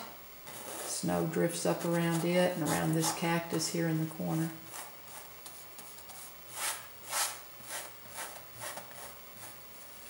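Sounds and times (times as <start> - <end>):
paintbrush scratching on canvas: 0.5 - 1.1, 1.7 - 3.3, 4.0 - 9.6.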